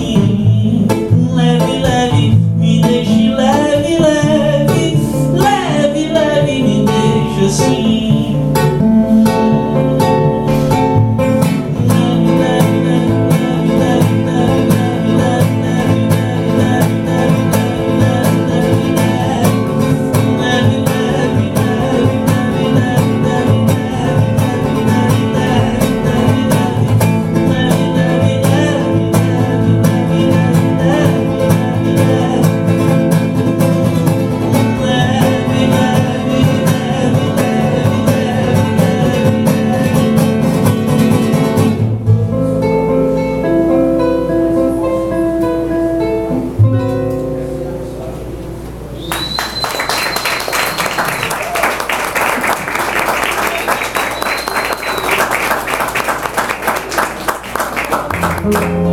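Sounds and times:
acoustic guitar strumming: 0.0s - 58.9s
picked guitar notes ringing: 0.4s - 37.3s, 41.4s - 49.1s, 58.1s - 58.9s.

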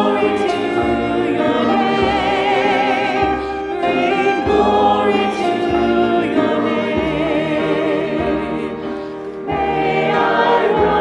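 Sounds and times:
choir singing a hymn: 0.0s - 11.0s
low instrumental accompaniment: 0.0s - 11.0s.

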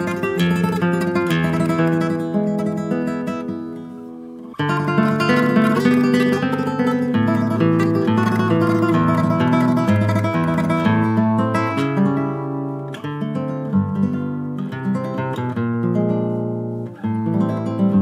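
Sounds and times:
fingerstyle nylon-string guitar: 0.0s - 18.0s.

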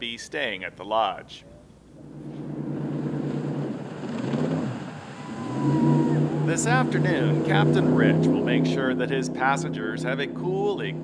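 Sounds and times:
jet boat engine running: 1.9s - 11.0s.

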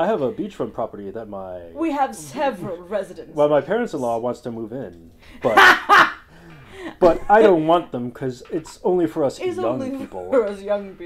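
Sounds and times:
person laughing loudly: 5.4s - 6.2s.

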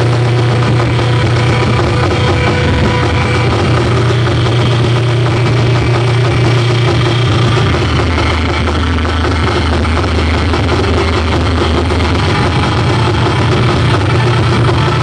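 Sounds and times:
dense hissing noise music: 0.0s - 15.0s
steady low drone: 0.0s - 15.0s.

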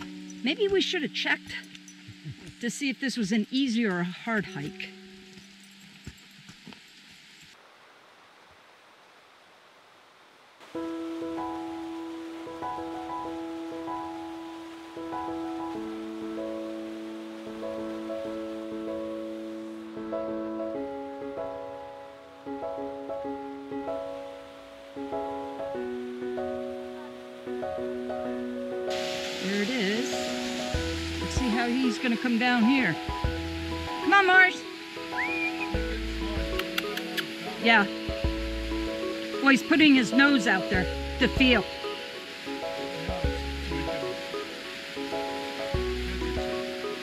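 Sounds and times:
faint rush of water: 0.0s - 47.0s
background music of held chords: 10.6s - 47.0s.

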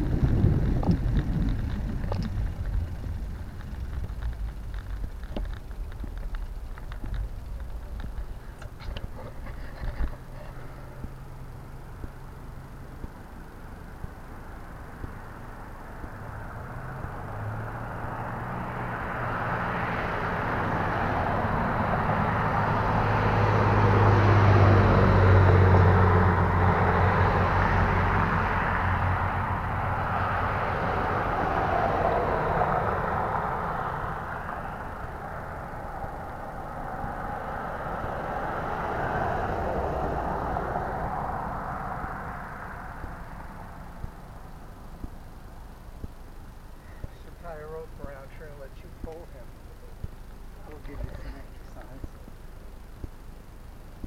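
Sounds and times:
vehicles passing: 0.0s - 54.0s.

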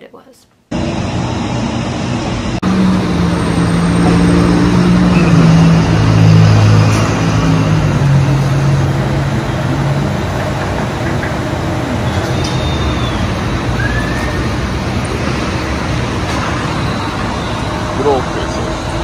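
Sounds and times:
road noise: 0.7s - 19.0s
heavy vehicle engine droning past: 2.4s - 19.0s.

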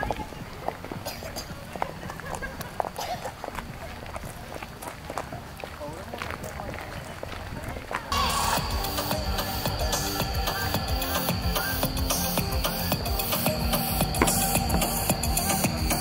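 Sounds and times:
footsteps scuffing on a path: 0.0s - 8.1s, 14.2s - 15.2s
faint voices: 0.0s - 8.5s
music with a steady beat: 8.6s - 16.0s.

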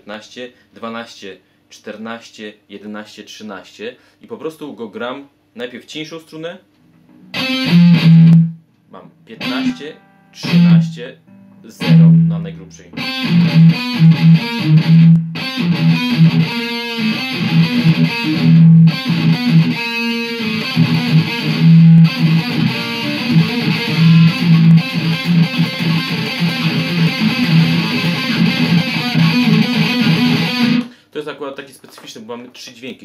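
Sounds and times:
distorted electric guitar riff: 7.3s - 8.6s, 9.3s - 31.0s.

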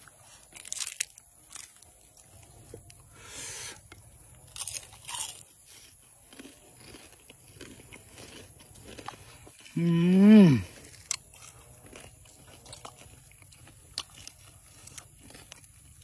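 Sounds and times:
person chewing crisp food: 0.0s - 16.0s.

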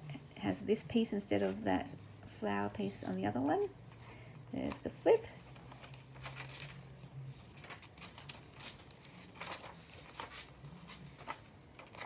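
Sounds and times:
paper pages rustling: 1.2s - 12.0s.

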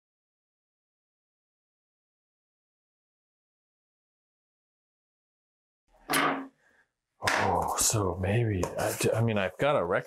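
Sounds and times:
man speaking: 7.2s - 10.0s.

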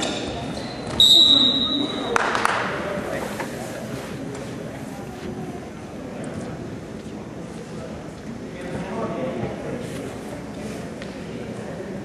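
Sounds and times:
referee's whistle blast: 1.0s - 2.0s.

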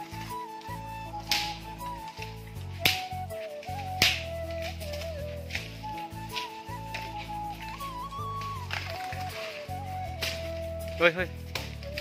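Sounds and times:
background music: 0.0s - 12.0s
snap-like percussion hits: 1.2s - 5.7s.

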